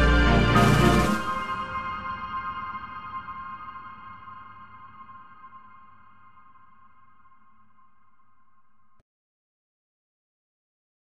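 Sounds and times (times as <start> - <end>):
held bell-like chord: 0.0 - 7.9.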